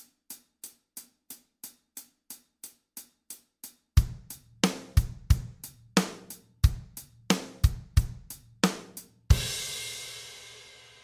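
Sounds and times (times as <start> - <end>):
drum kit beat: 0.0 - 11.0.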